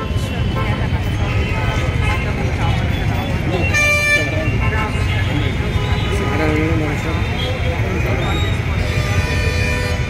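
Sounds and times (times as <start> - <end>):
vehicle horn: 3.6 - 6.5, 8.8 - 10.0.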